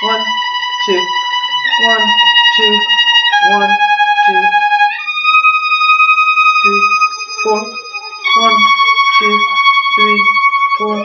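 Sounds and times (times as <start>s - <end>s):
violin bowing sustained notes: 0.0s - 11.0s.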